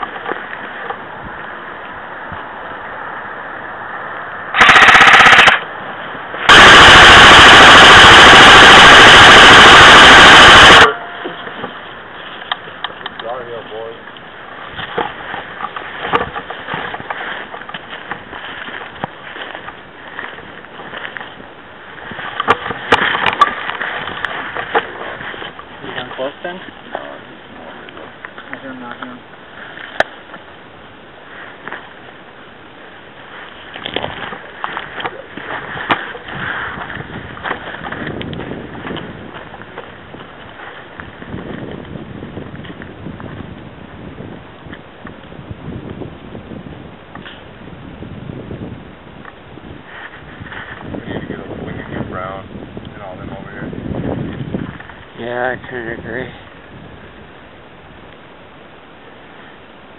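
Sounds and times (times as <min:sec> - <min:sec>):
airsoft gun full-auto fire: 0:04.6 - 0:05.7, 0:06.5 - 0:11.0.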